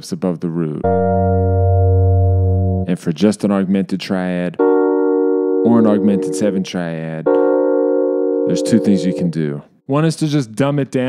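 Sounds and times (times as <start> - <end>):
sustained chord: 0.8 - 2.9, 5.1 - 6.7, 7.3 - 9.5.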